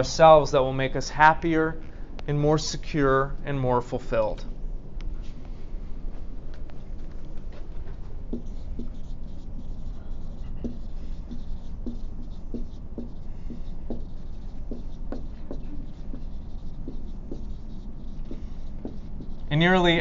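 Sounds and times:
low room hum: 0.0s - 20.0s
pen strokes and taps: 6.5s - 20.0s.

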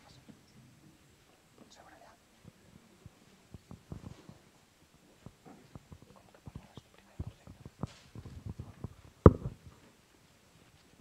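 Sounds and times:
faint whispered voice: 0.0s - 4.5s, 5.1s - 8.8s.

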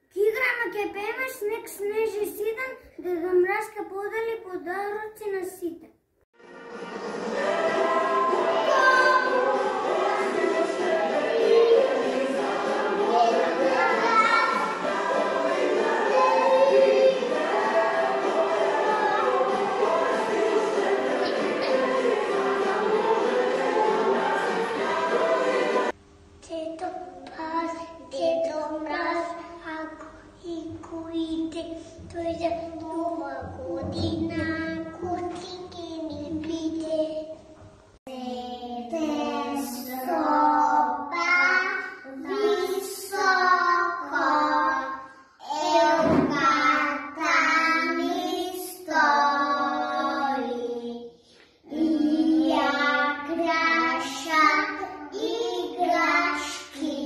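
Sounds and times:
backing music: 6.4s - 26.0s
children singing together: 6.4s - 26.0s, 38.1s - 57.0s
child singing unaccompanied: 7.4s - 20.0s, 26.4s - 37.3s, 38.1s - 51.0s, 51.7s - 57.0s.

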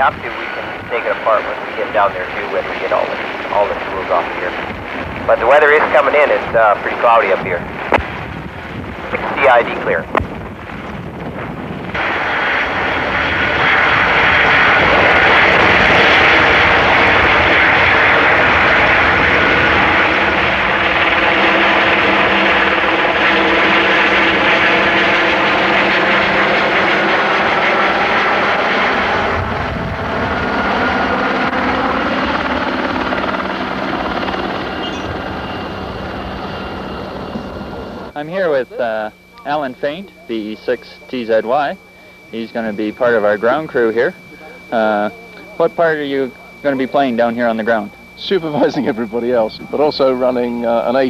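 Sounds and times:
helicopter hovering overhead: 0.0s - 51.0s.

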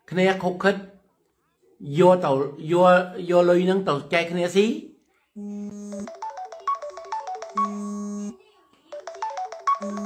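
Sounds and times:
phone ringtone melody: 5.4s - 10.0s.

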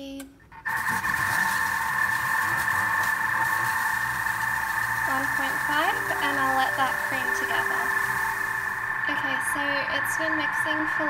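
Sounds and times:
food processor motor whine: 0.7s - 11.0s.

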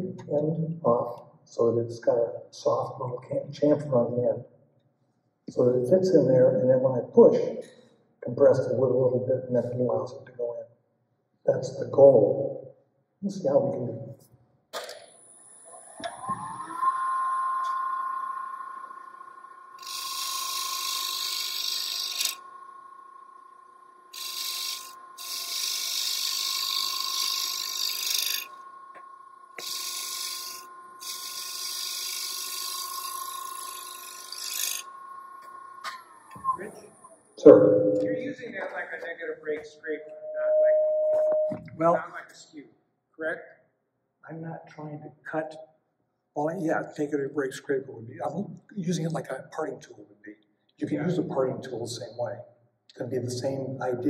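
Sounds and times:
wood lathe motor whine: 15.0s - 37.4s
hand tool cutting spinning wood: 19.8s - 22.4s, 24.1s - 28.6s, 29.6s - 34.9s.

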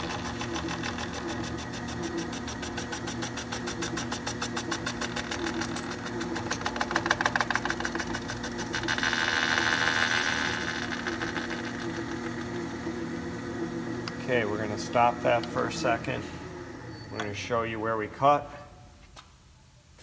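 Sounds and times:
cutter bit shaving rubber: 0.0s - 12.6s
lathe motor humming: 0.0s - 18.2s.

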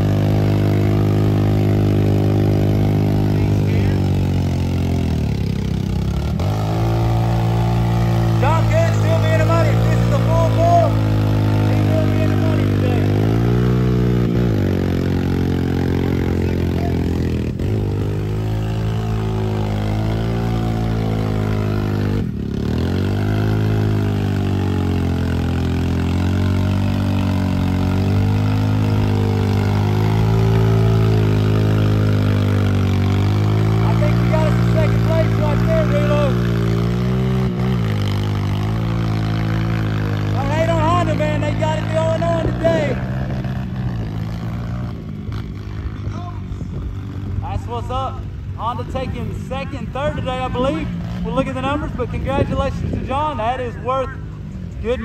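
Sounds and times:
quad bike engine revving: 0.0s - 55.0s.

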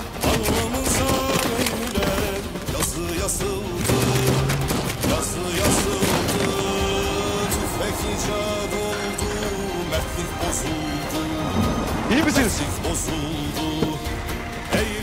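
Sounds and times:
background music: 0.0s - 15.0s
pistol gunshots: 3.8s - 7.1s.

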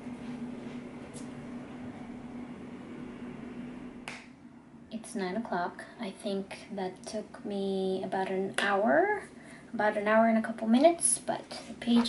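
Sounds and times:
low hum with faint hiss: 0.0s - 12.0s
hand clap: 4.0s - 4.3s.

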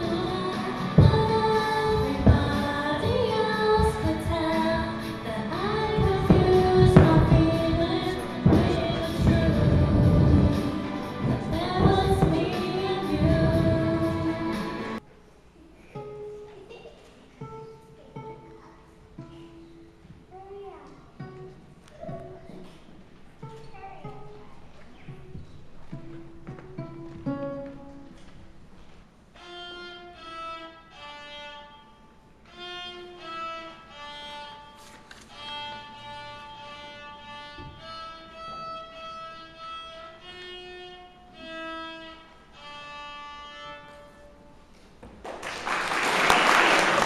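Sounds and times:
violin slow melody: 29.4s - 44.7s
audience applause: 45.2s - 47.0s.

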